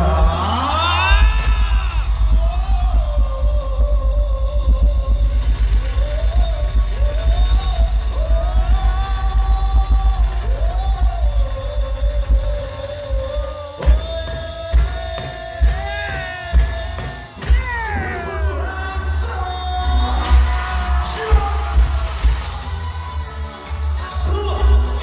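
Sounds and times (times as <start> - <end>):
heavy fast bass beat: 0.0 - 23.3
live band music: 0.0 - 25.0.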